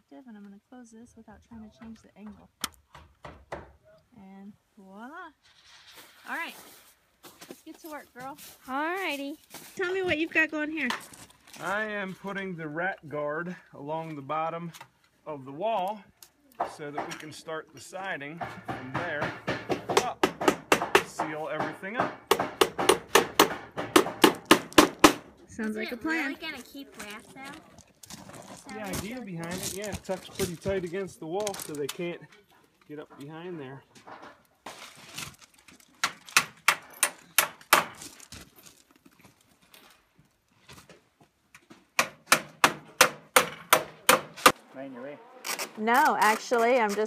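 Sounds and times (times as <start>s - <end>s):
hammer striking nails: 2.6s - 3.8s, 18.4s - 25.3s, 36.0s - 38.0s, 42.0s - 44.6s.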